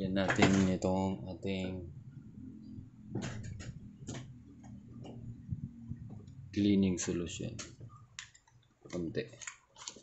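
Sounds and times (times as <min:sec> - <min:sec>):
faint low hum: 0:00.0 - 0:08.3.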